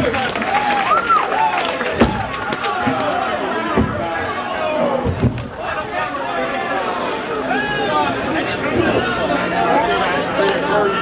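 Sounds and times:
crowd chatter: 0:00.0 - 0:11.0
low thumps: 0:01.9 - 0:06.0.

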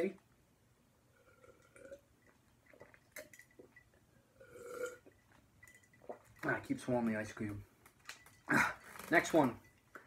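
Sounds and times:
person gulping a drink: 0:01.1 - 0:05.4.

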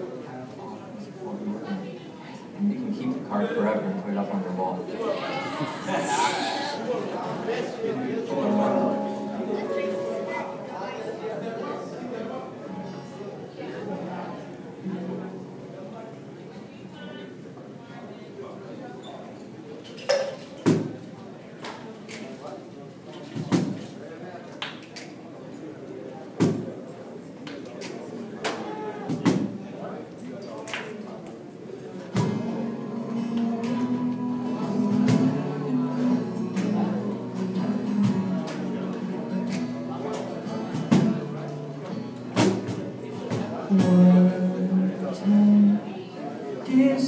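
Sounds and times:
murmur of voices in a hall: 0:00.0 - 0:47.0
acoustic guitar: 0:02.8 - 0:16.8, 0:32.0 - 0:47.0
acoustic band playing: 0:08.1 - 0:16.3, 0:32.1 - 0:47.0.

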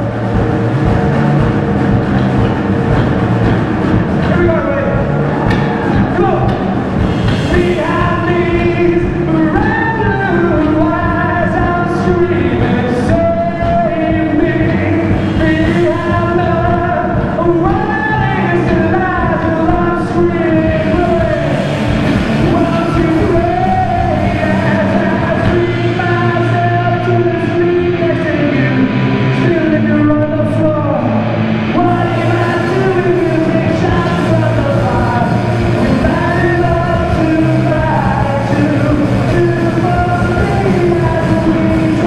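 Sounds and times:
drums: 0:00.0 - 0:42.0
electric guitar: 0:00.0 - 0:42.0.

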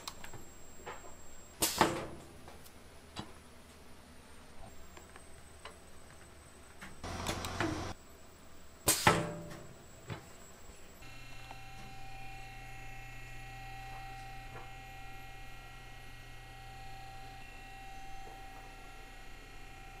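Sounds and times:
steady machine hum: 0:07.0 - 0:20.0.

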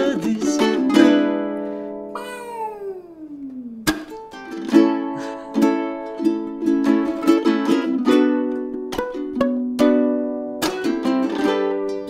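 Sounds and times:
ukulele strumming: 0:00.0 - 0:12.0
voice sliding down in pitch: 0:02.2 - 0:04.0.

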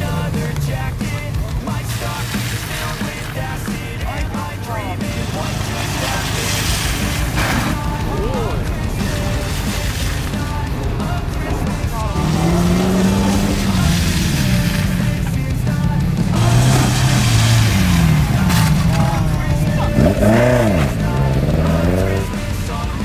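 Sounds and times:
background music: 0:00.0 - 0:23.0
car engines running at low speed: 0:00.0 - 0:23.0.

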